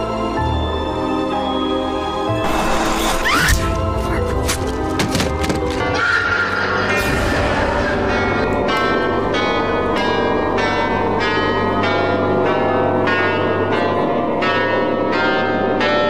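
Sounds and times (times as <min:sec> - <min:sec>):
steady low drone: 0:05.8 - 0:15.0.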